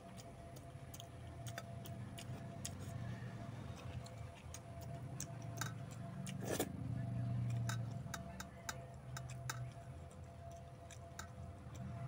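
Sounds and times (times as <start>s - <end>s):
man chewing food: 0.0s - 12.0s.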